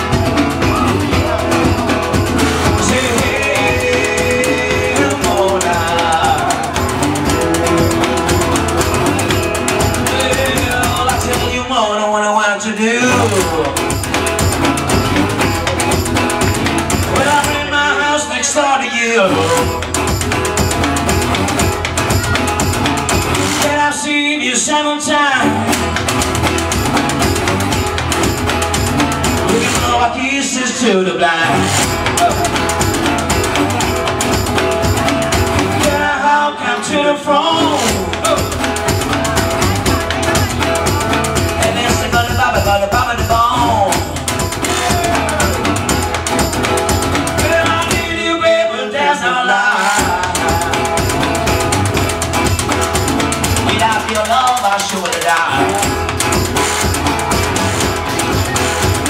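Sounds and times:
resonator guitar: 0.0s - 11.7s, 13.0s - 24.1s, 25.3s - 30.3s, 31.4s - 48.4s, 49.9s - 59.0s
man singing: 0.0s - 14.1s, 16.6s - 20.2s, 23.5s - 25.8s, 29.3s - 52.4s, 53.4s - 56.2s.

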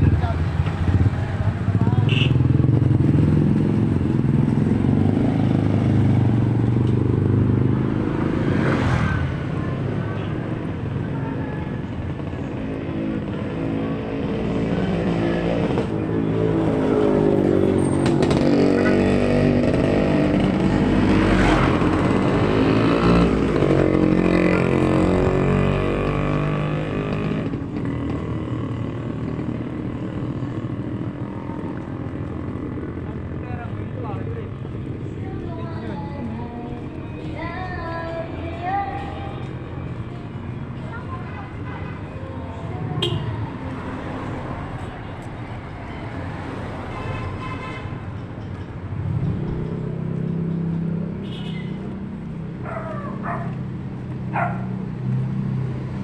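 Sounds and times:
motorcycle engines passing: 0.0s - 56.0s.

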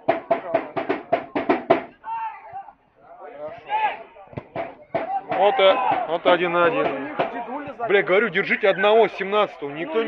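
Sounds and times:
sharp knocks: 0.0s - 1.9s, 4.3s - 7.4s
men shouting: 5.0s - 7.6s.

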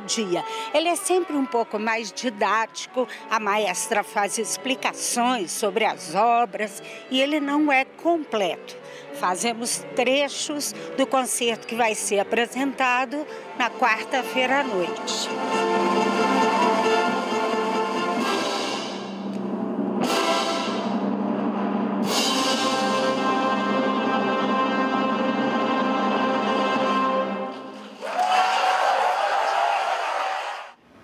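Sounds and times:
orchestra playing loud chords: 13.4s - 27.9s
audience applause: 27.8s - 30.8s.

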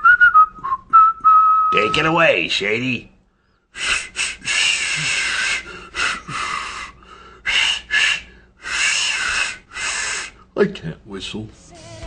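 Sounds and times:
person blowing air through lips: 3.8s - 6.9s, 7.5s - 10.4s.

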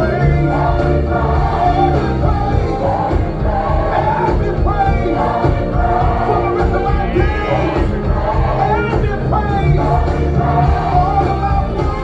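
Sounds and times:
full band accompaniment: 0.0s - 12.0s
gospel worship music: 0.0s - 12.0s
voices singing together: 0.0s - 12.0s.

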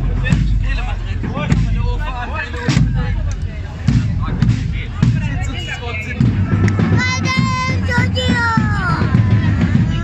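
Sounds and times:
crowd chatter: 0.0s - 10.0s
marching band bass drum beats: 0.0s - 10.0s.

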